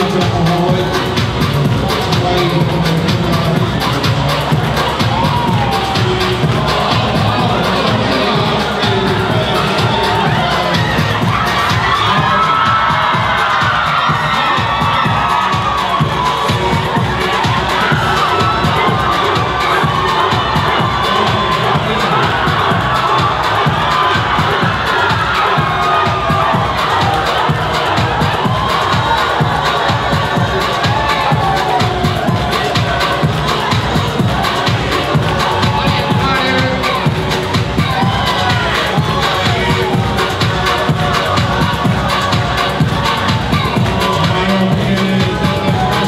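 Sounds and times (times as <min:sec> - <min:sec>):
crowd cheering and shouting: 0:00.0 - 0:46.0
music with low beat: 0:00.0 - 0:46.0.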